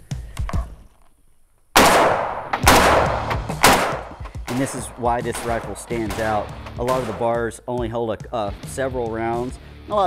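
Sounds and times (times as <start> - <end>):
rifle shots with echo: 1.8 - 7.4.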